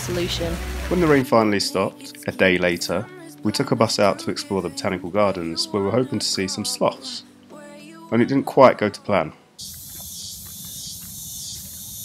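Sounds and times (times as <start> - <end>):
insects chorus: 9.6 - 12.0.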